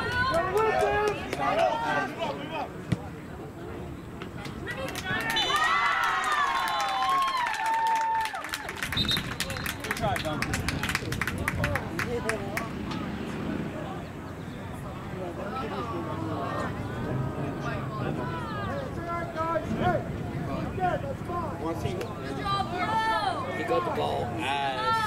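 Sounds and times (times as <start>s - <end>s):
players and coaches shouting: 0.0s - 2.8s, 15.5s - 25.0s.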